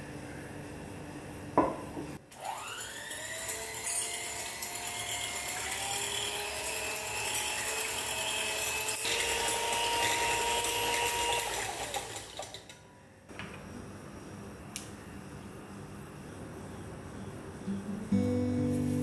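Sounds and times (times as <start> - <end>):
electric hand mixer whining: 2.3 - 12.6.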